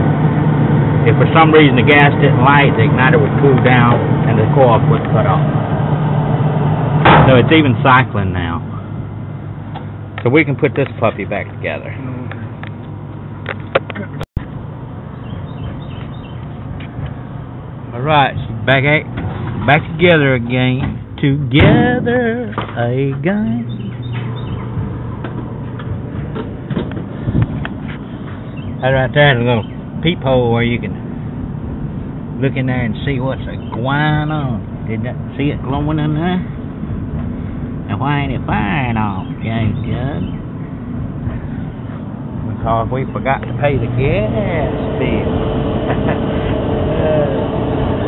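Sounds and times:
constant hum: 0.0s - 48.0s
dryer rumbling: 15.0s - 48.0s
clothes dryer humming: 43.8s - 48.0s.

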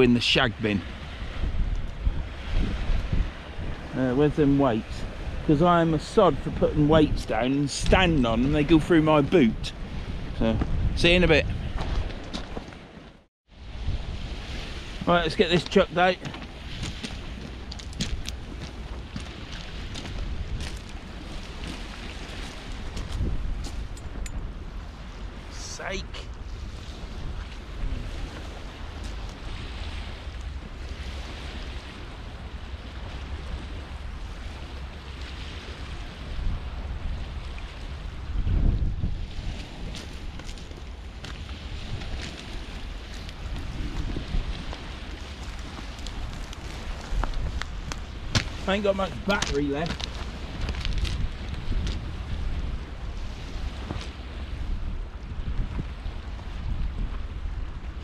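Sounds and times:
waves washing on shingle: 0.0s - 13.0s, 13.6s - 58.0s
wind buffeting microphone: 0.0s - 58.0s.

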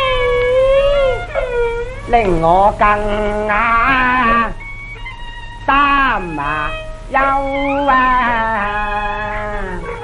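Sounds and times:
opera singer holding long notes: 5.6s - 10.0s.

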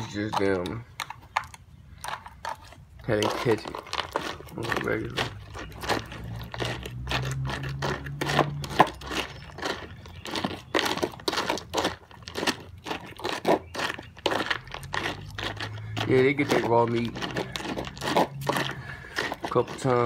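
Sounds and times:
dry kibble crunching: 0.0s - 20.0s.

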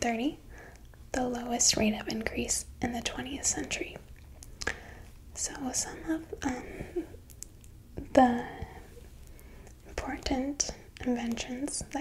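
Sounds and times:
woman speaking softly: 0.0s - 0.4s, 1.1s - 4.0s, 5.4s - 7.1s, 8.0s - 8.8s, 9.9s - 12.0s.

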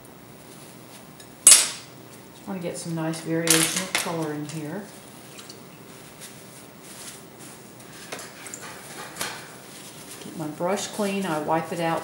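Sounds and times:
brush wiped in tissue: 4.9s - 8.1s, 9.6s - 11.5s.

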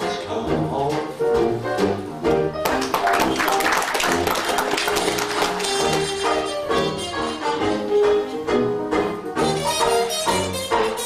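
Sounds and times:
jazz band playing: 0.0s - 11.0s.

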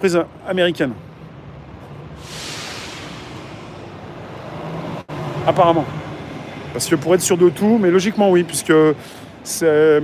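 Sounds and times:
hiss of traffic: 1.7s - 6.8s, 8.9s - 9.5s
low hum: 2.1s - 5.1s.

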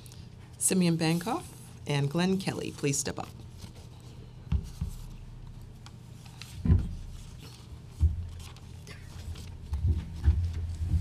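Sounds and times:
paper rustling: 2.5s - 4.2s, 5.9s - 11.0s.

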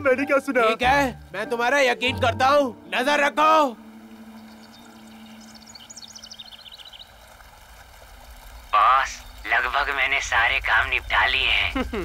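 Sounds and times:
birds twittering: 2.8s - 12.0s.

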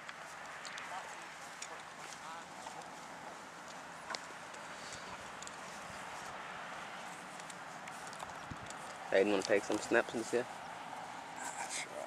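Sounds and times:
light clicks: 0.0s - 0.9s
faint outdoor background noise: 0.0s - 12.0s.

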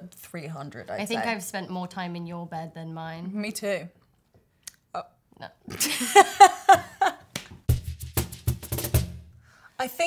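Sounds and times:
women laughing loudly: 5.8s - 7.2s.

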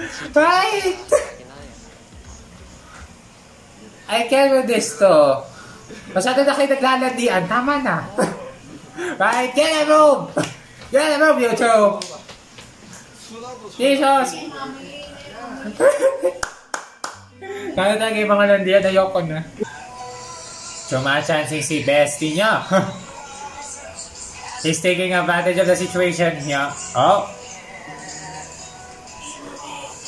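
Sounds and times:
sharp hand claps: 16.4s - 17.2s.

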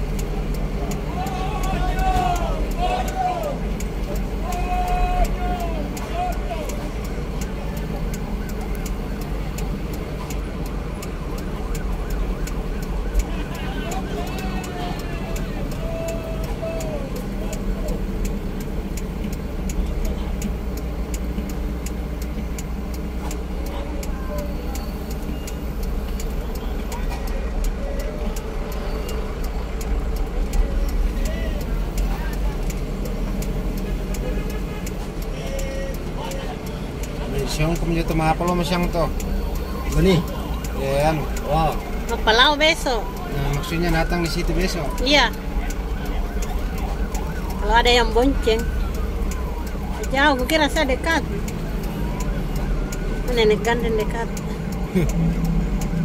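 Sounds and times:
road noise: 0.0s - 56.0s
vehicle engine rumble: 0.0s - 56.0s
voices calling out: 0.0s - 56.0s.

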